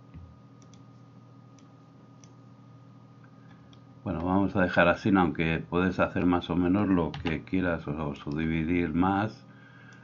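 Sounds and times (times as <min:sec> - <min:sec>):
faint steady hum: 0:00.0 - 0:10.0
computer clicks: 0:00.6 - 0:00.9.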